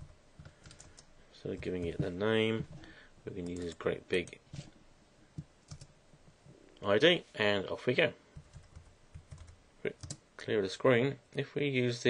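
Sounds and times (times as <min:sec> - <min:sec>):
computer keyboard keystrokes: 0:00.4 - 0:01.0, 0:05.7 - 0:05.9, 0:08.4 - 0:10.2.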